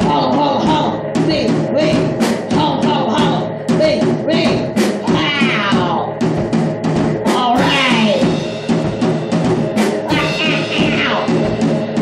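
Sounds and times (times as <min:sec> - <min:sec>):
drum kit playing: 0:00.0 - 0:12.0.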